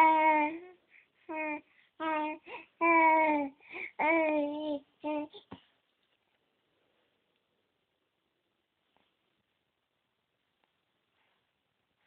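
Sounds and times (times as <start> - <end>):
baby cooing: 0.0 - 5.6.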